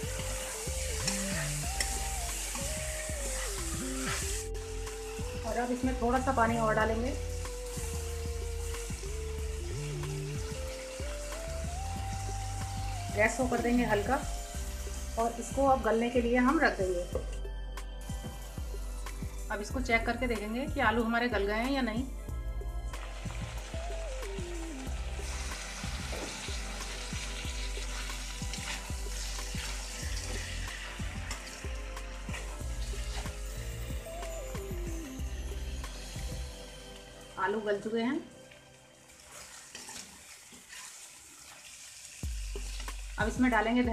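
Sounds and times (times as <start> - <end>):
potatoes sizzling in oil: 0.0 - 17.2, 22.9 - 43.9
music with slow held notes: 0.0 - 40.3, 42.2 - 43.9.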